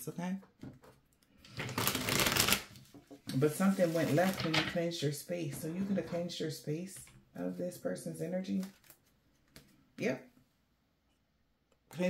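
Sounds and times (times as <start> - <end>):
cards being shuffled: 0.8 - 4.8, 8.5 - 9.8.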